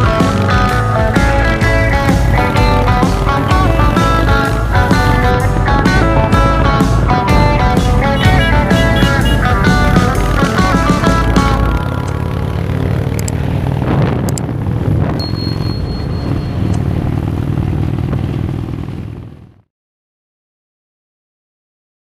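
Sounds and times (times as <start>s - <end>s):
guitar background music: 0.0s - 13.6s
road rumble: 0.0s - 19.6s
motorcycle engine: 0.0s - 19.7s.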